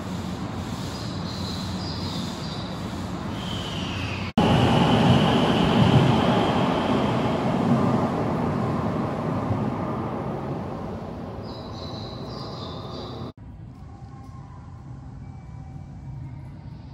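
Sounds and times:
train rumbling: 0.0s - 14.4s
faint high whine: 3.3s - 16.9s.

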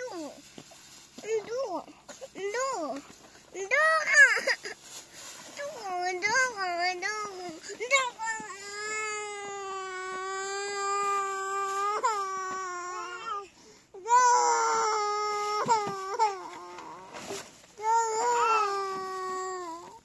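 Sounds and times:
infant crying: 7.4s - 20.0s.

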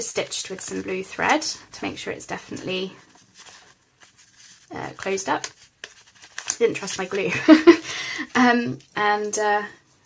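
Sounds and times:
paper rustling: 3.0s - 9.4s.

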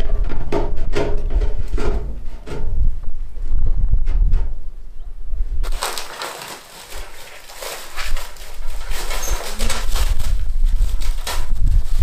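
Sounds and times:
rustling and scraping of materials: 5.6s - 12.0s.

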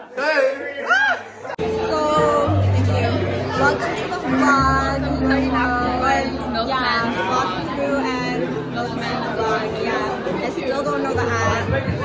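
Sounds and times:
voices chattering: 0.0s - 12.0s
music with steady bass line: 11.2s - 12.0s.

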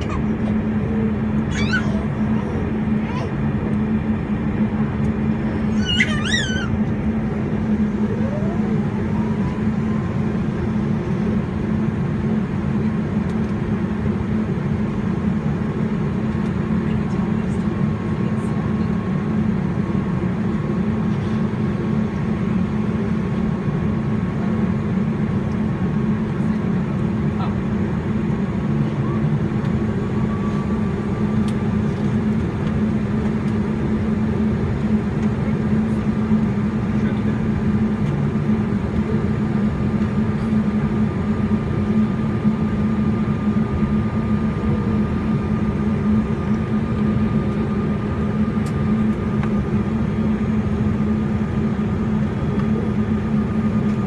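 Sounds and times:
aircraft cabin hum: 0.0s - 54.0s
turbine whine: 0.0s - 54.0s
high squeaky calls: 5.7s - 6.8s.

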